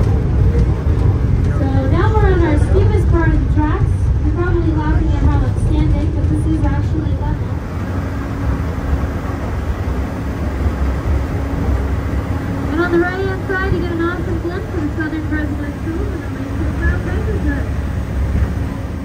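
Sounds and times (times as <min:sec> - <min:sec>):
train low rumble: 0:00.0 - 0:19.0.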